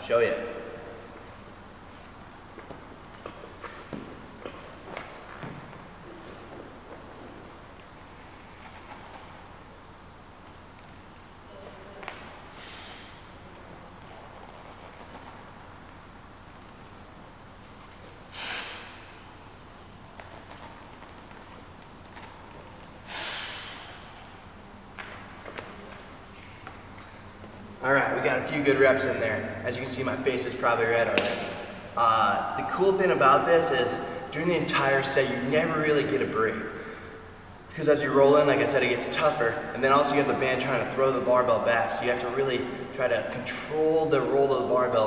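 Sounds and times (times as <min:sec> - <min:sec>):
man exhaling forcefully: 0:12.5 - 0:13.2, 0:18.3 - 0:19.3, 0:23.0 - 0:24.2.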